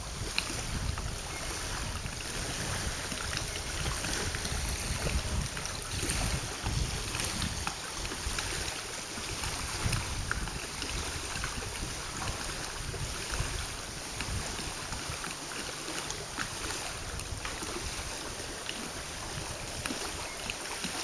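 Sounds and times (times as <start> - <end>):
small waves lapping shore: 0.0 - 21.0
wind buffeting microphone: 0.0 - 21.0.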